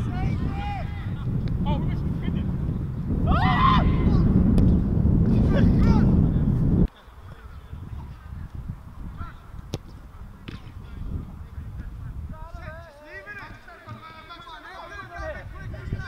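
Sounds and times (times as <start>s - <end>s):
wind rumbling on microphone: 0.0s - 13.8s, 14.8s - 16.0s
outdoor noise: 0.0s - 16.0s.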